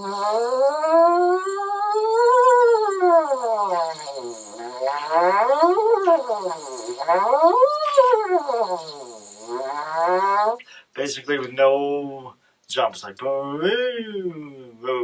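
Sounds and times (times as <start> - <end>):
lips buzzing into horn mouthpiece: 0.0 - 10.6.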